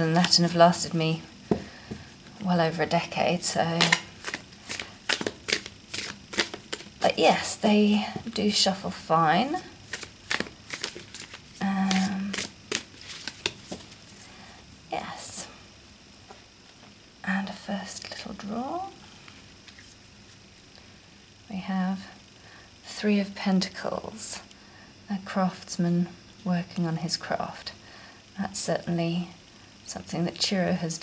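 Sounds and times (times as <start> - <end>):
cards being shuffled: 3.6 - 7.2, 9.8 - 14.3, 19.6 - 20.4.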